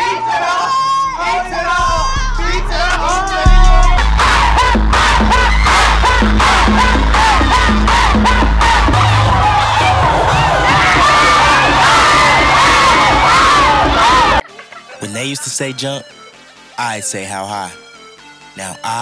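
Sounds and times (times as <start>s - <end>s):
crowd shouting and cheering: 0.0s - 14.5s
loud music with bass beat: 1.1s - 14.4s.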